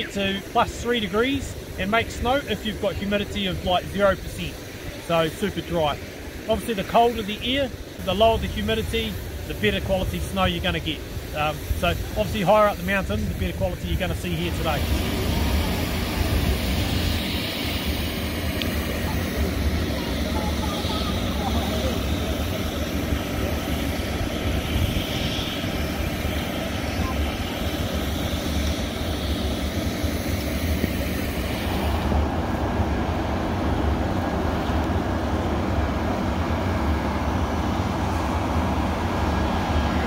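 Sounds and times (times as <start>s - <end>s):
snowmaking gun rushing noise: 0.0s - 40.0s.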